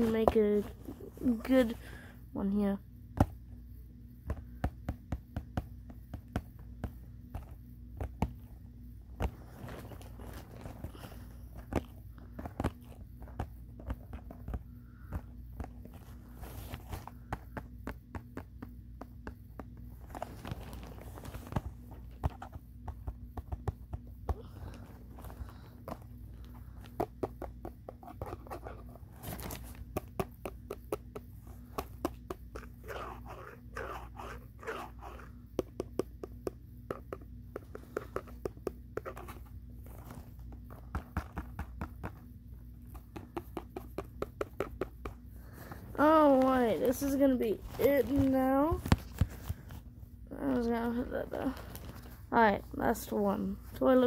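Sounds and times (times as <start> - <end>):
fingers tapping cardboard box: 4.2 - 8.5, 17.0 - 19.9, 22.0 - 24.4, 26.8 - 28.8, 29.4 - 33.1, 34.7 - 39.4, 40.6 - 45.3
fingers scraping cardboard: 26.9 - 39.4.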